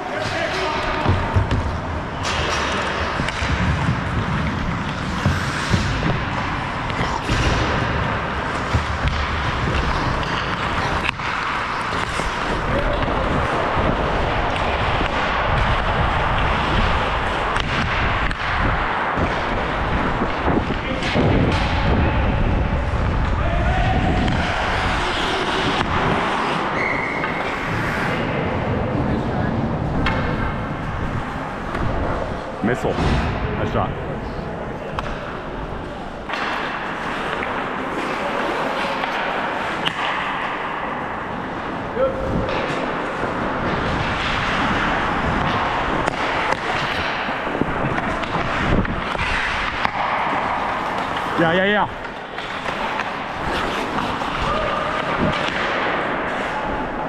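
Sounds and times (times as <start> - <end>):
skate blades on ice: 0.0 - 32.9, 34.8 - 57.0
hockey sticks and puck knocking: 0.1 - 23.4, 24.1 - 28.4, 29.8 - 33.3, 34.9 - 57.0
wind rumble on microphone: 12.4 - 26.3.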